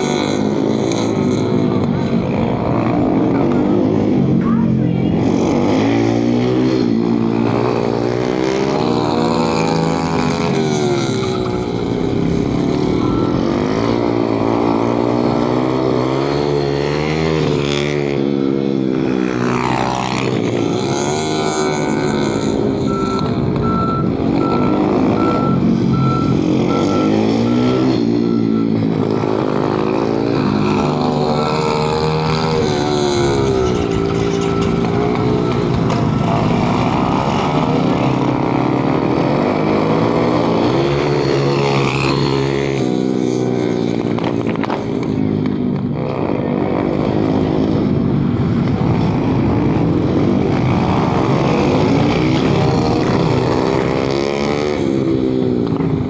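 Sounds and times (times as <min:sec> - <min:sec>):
motorcycle engines revving: 0:00.0 - 0:56.0
high electronic beeping: 0:08.9 - 0:14.8, 0:20.1 - 0:37.7.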